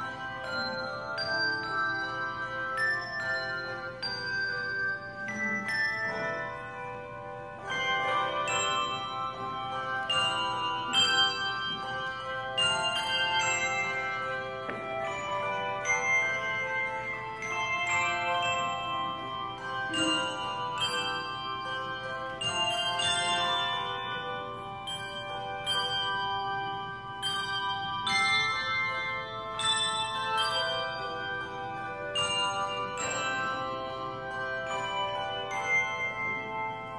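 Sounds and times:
handbell choir ringing: 0.0 - 36.9.

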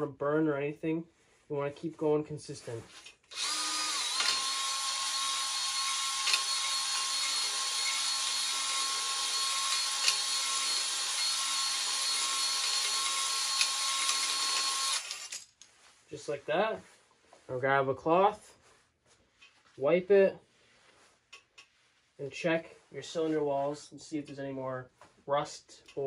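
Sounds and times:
drill motor whine: 3.3 - 15.4.

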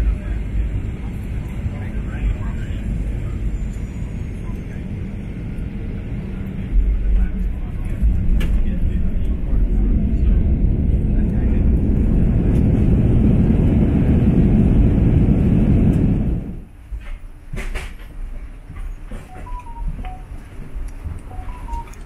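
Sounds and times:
airliner engines and wheels rumbling: 0.0 - 22.0.

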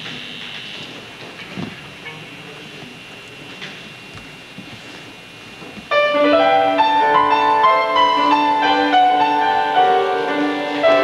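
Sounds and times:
recording hiss: 5.9 - 11.0.

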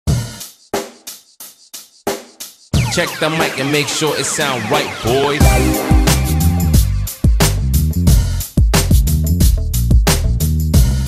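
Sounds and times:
drum and cymbal hits: 0.1 - 11.0
cymbal crash: 4.4 - 7.9
kick drum: 8.1 - 10.1, 10.8 - 11.0.

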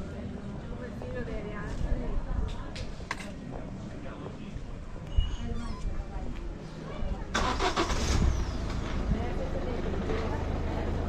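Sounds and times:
vehicle engine starting and running: 7.3 - 11.0.

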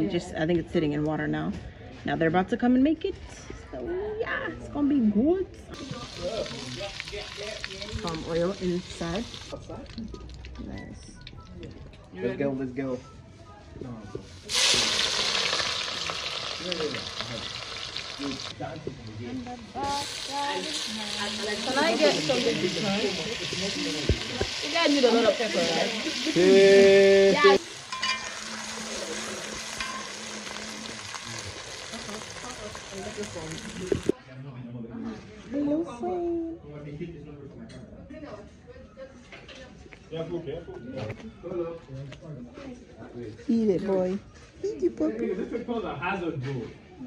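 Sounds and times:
onions sizzling in hot oil: 5.8 - 9.6, 14.4 - 18.9, 19.7 - 34.2.

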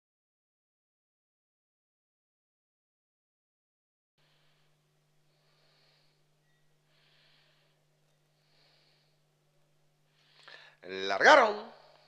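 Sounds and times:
soft puffs of hiss: 4.2 - 11.0
low steady hum: 4.2 - 12.0.

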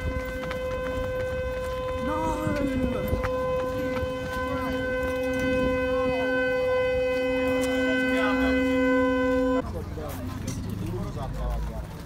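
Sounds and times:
car horn steady tone: 0.0 - 9.6
faint voices: 1.9 - 12.0.

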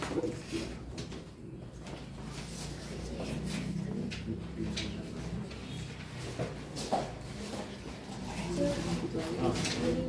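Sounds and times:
bird cooing: 0.0 - 0.9.

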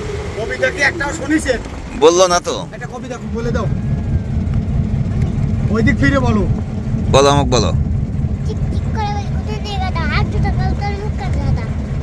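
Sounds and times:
diesel engine drone: 0.0 - 12.0.

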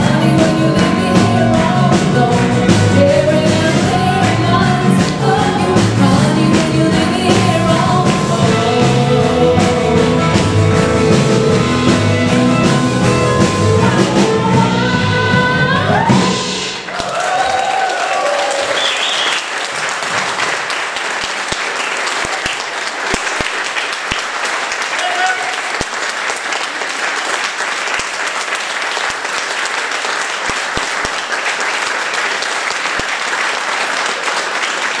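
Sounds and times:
audience applauding: 16.8 - 35.0.

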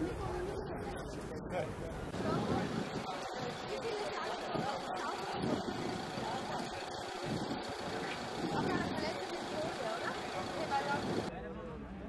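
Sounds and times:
vehicle noise: 0.0 - 11.3
people talking: 0.0 - 12.0.

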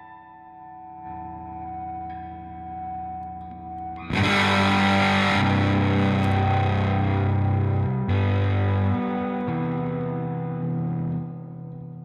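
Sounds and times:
distorted electric guitar chord: 4.0 - 11.6.

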